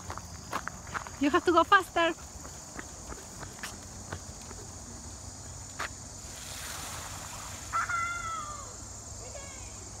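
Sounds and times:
bicycle tyres splashing through water: 6.2 - 8.1
high falling cry: 7.5 - 9.7.

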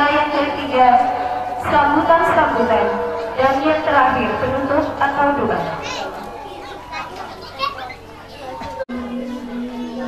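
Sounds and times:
indistinct talking: 0.0 - 10.0
children's voices: 2.8 - 10.0.

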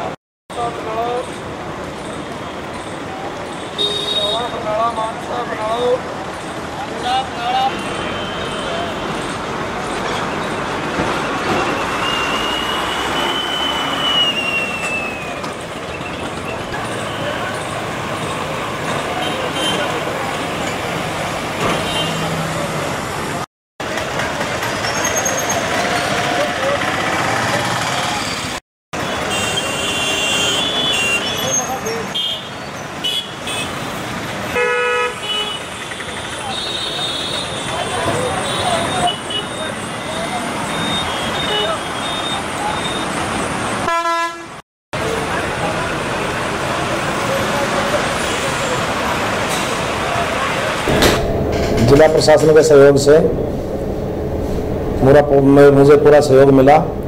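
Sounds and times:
horns honking: 3.8 - 4.6, 7.7 - 9.2, 29.0 - 33.8, 34.5 - 35.8, 43.8 - 44.6
vehicle engines running: 14.7 - 29.2.

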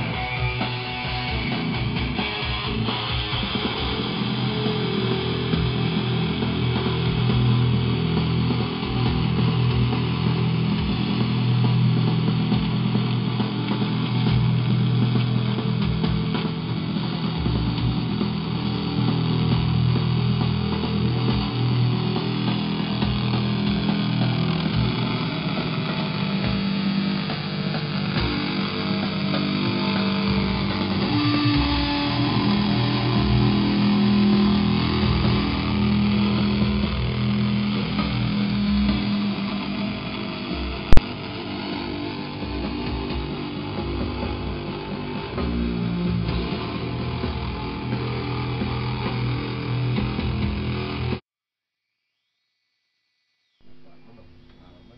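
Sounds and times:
bowed electric guitar sustained notes: 0.0 - 51.2.

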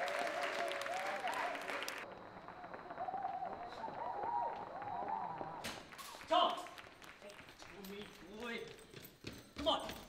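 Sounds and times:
running footsteps on hard floor: 6.6 - 10.0.

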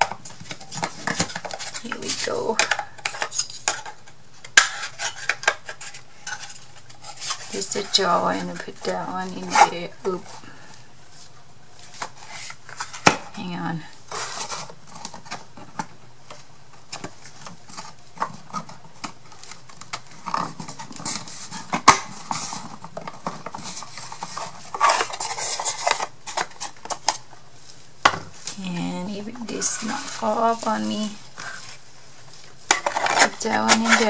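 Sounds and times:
wood scraping: 0.0 - 34.0
person speaking: 1.8 - 2.7, 7.5 - 10.4, 13.3 - 14.0, 28.5 - 31.2, 33.2 - 34.0.

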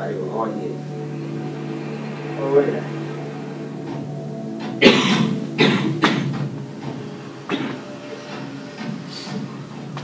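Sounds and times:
film music over speakers: 0.0 - 10.0.

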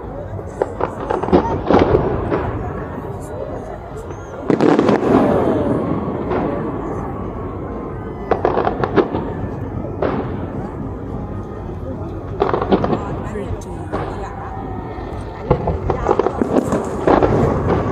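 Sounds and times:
rumble of firework bursts: 0.0 - 17.9
fireworks bangs and pops: 0.5 - 7.5, 8.3 - 11.1, 12.2 - 14.4, 15.1 - 17.9
big loud firework burst: 0.6 - 17.9.

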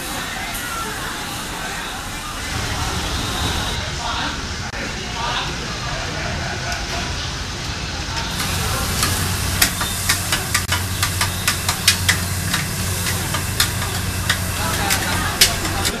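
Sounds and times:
food sizzling: 8.3 - 16.0.

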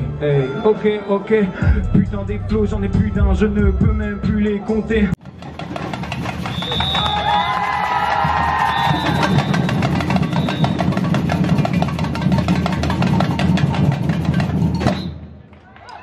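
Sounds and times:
bass drums: 1.6 - 15.0.

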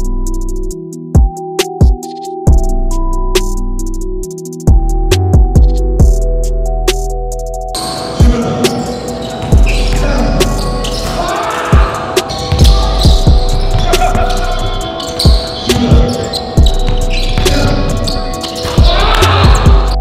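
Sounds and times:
basketball bouncing on wooden floor: 12.4 - 14.3.

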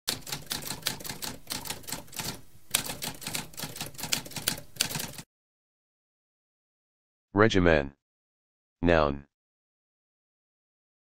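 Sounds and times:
typewriter keys clacking: 0.1 - 5.2.

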